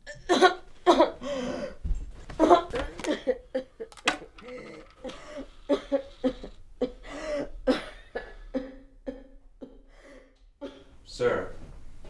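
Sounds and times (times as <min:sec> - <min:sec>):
person coughing: 0:00.1 - 0:01.2, 0:04.6 - 0:09.8.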